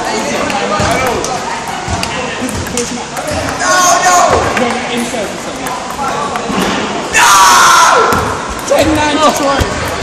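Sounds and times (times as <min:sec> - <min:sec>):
students talking and calling out: 0:00.0 - 0:10.0.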